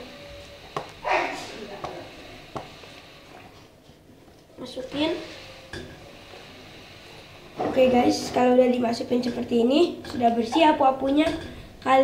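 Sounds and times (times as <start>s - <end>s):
boy's voice: 4.6s - 5.4s, 7.6s - 12.0s.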